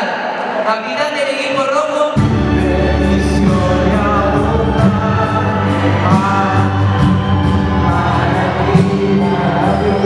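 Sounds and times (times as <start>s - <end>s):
karaoke backing track over pa: 0.0s - 10.0s
person singing: 0.0s - 10.0s.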